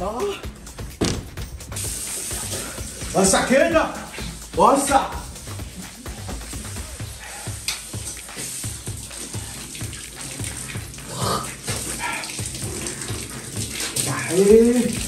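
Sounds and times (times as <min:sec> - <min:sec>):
music with bass beat: 0:00.0 - 0:13.9
water running from taps: 0:00.0 - 0:15.0.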